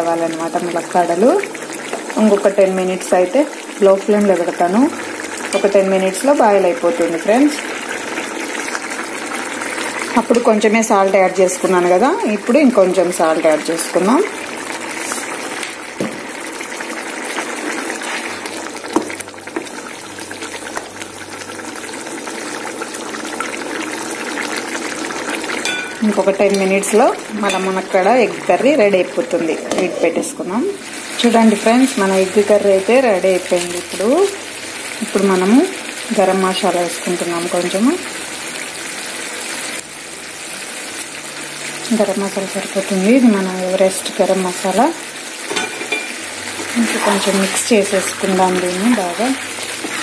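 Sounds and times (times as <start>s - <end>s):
curry bubbling in a pan: 0.2s - 29.8s, 30.8s - 50.0s.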